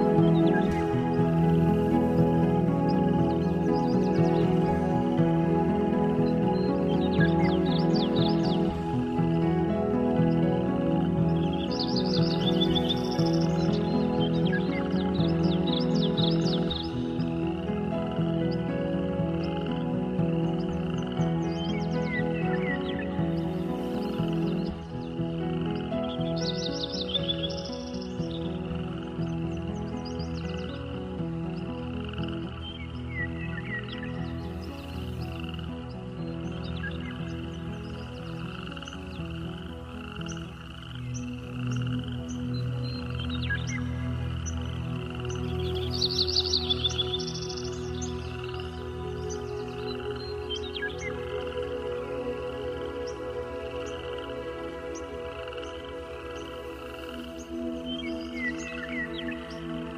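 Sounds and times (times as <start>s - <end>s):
bird chirping: 0.0s - 59.9s
frogs croaking: 0.0s - 59.9s
slow ambient music: 0.0s - 59.9s.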